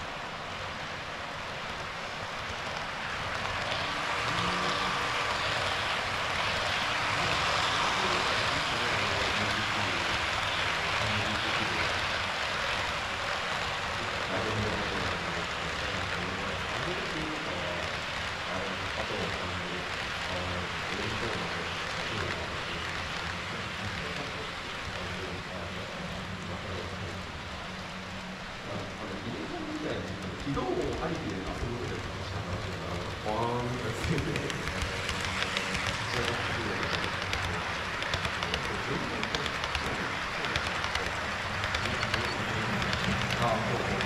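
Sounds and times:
model train wheels rumbling on track: 0:00.0 - 0:44.0.

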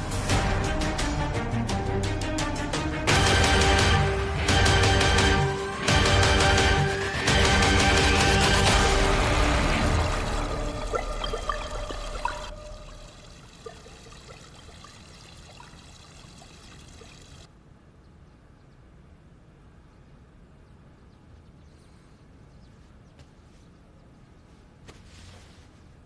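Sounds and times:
music: 0:00.0 - 0:12.6
water pouring from spouts: 0:09.7 - 0:17.5
water drips: 0:10.0 - 0:17.5.

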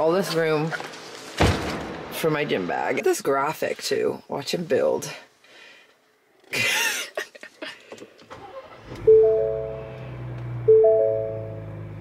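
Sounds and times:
car engine idling: 0:08.6 - 0:12.0
two-tone warning chime: 0:09.0 - 0:09.9, 0:10.6 - 0:11.6.

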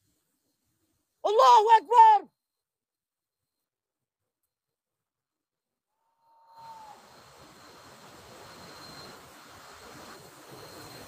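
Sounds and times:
brief whistle-like tone: 0:06.2 - 0:07.8, 0:08.4 - 0:09.3, 0:10.5 - 0:11.0
faint steady hiss: 0:06.5 - 0:11.0.

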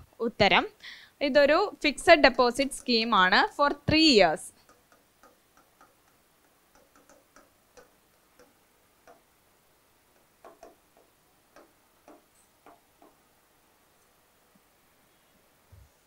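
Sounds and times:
pen tapping on display board: 0:04.6 - 0:09.3, 0:10.1 - 0:13.2.

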